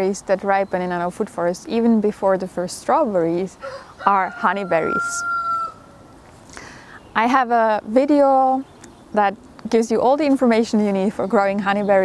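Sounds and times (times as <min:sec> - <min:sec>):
rooster crowing: 0:03.6 - 0:06.1.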